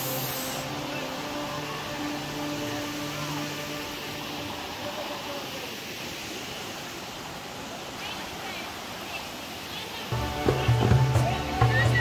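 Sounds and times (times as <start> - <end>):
stream water running over rocks: 0.0 - 12.0.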